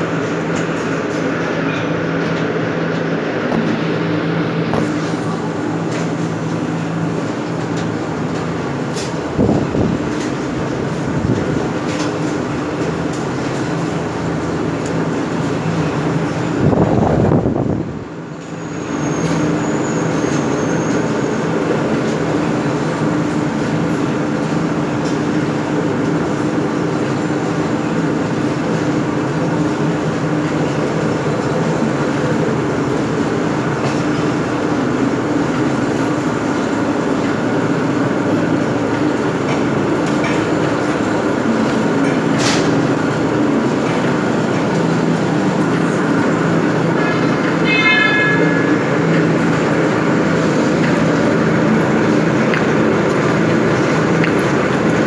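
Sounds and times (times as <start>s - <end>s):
mill machinery droning: 0.0s - 55.0s
brief high whine: 47.6s - 49.2s.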